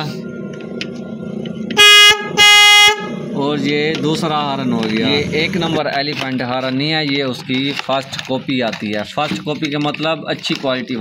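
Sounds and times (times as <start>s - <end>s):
vehicle horn blasts: 1.7s - 3.2s.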